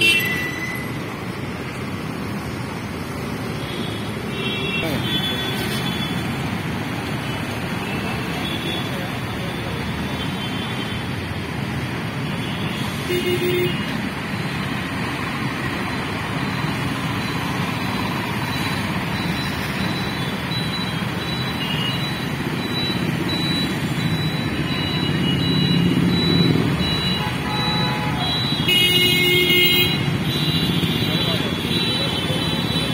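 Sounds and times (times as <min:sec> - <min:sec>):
traffic engines and tyres passing: 0:00.0 - 0:32.9
vehicle horn: 0:27.2 - 0:30.1.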